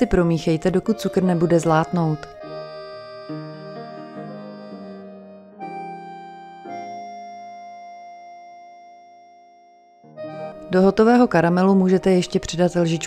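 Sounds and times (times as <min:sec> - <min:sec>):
slow sustained music chords: 0:02.2 - 0:13.0.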